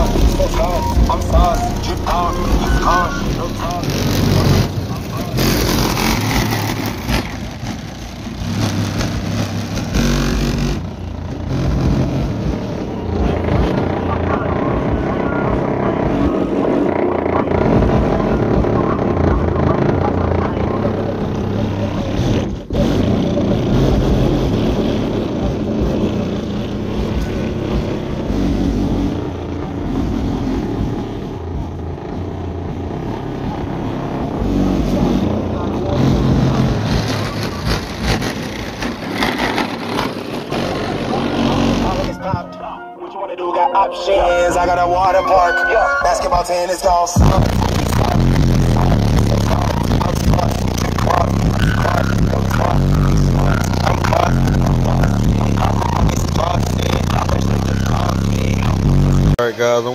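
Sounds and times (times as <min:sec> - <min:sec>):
rap song with deep bass: 0:00.0 - 0:07.7, 0:11.7 - 0:59.9.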